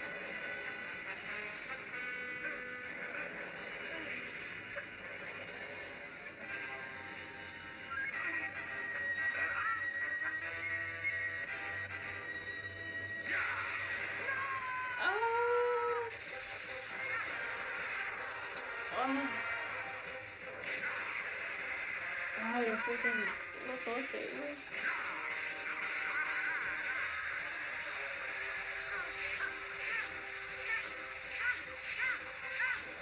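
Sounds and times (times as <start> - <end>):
cartoon characters' voices and cries: 13.2 - 17.6, 18.7 - 19.7, 22.2 - 26.9, 28.7 - 33.0.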